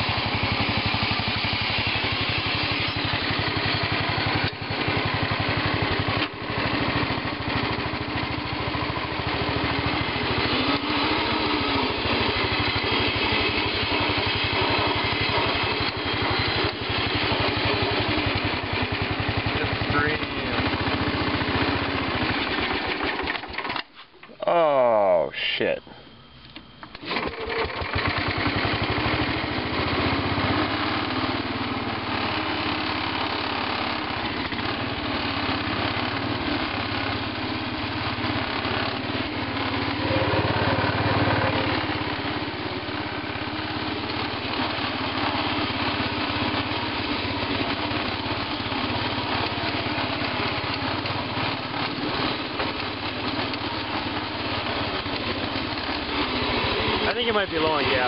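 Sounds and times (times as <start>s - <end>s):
garden tractor engine starting: 0.0s - 58.0s.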